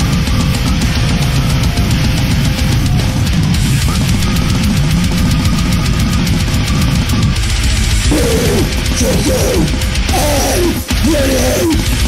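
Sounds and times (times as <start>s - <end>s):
heavy metal band playing: 0.0s - 12.0s
person singing: 8.1s - 12.0s.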